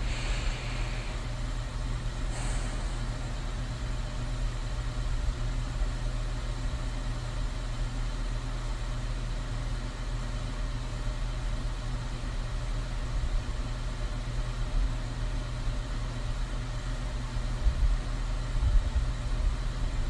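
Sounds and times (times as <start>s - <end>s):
low rumbling hum: 0.0s - 7.9s.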